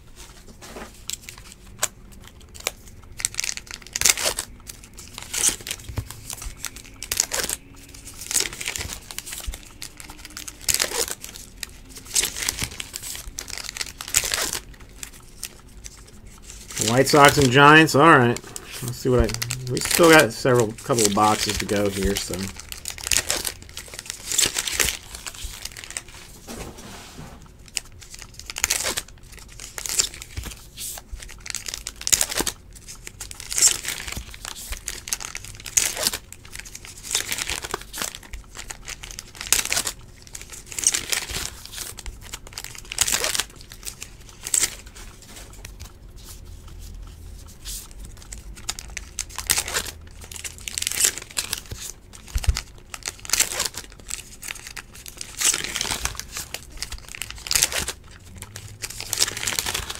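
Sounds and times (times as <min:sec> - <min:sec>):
wrappers crinkling and tearing: 0:00.2 - 0:26.7, 0:27.4 - 0:59.9
cards being handled: 0:00.2 - 0:32.6, 0:50.8 - 0:59.9.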